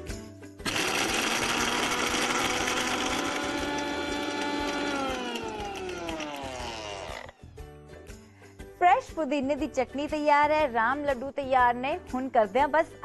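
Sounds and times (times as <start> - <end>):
mixer grinder motor running: 0.6 - 7.4.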